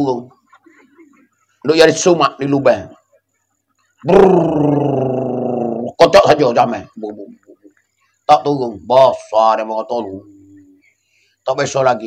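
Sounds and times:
man holding a vocal note: 0:04.0 - 0:05.9.

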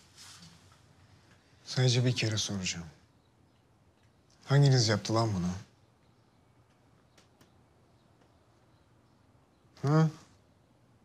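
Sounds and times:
faint clicks: 0:03.5 - 0:04.5, 0:06.0 - 0:08.7.

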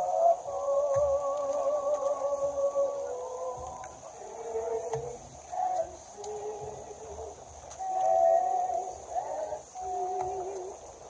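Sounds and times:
people singing a slow hymn: 0:00.0 - 0:11.0
steady high hiss: 0:00.0 - 0:11.0.

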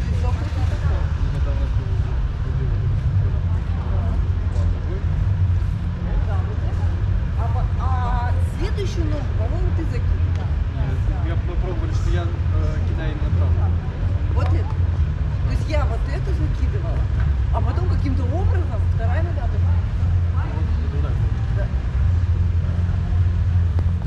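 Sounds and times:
low outdoor rumble: 0:00.0 - 0:24.0.

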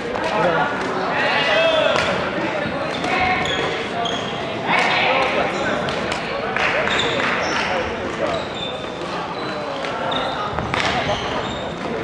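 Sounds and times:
voices echoing in a hall: 0:00.0 - 0:12.0
sneakers squeaking on wooden floor: 0:02.6 - 0:04.5, 0:06.8 - 0:12.0.

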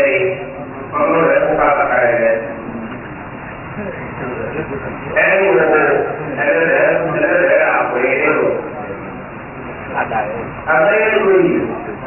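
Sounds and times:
man speaking into a microphone: 0:00.0 - 0:02.6, 0:05.1 - 0:08.8, 0:09.9 - 0:12.0.

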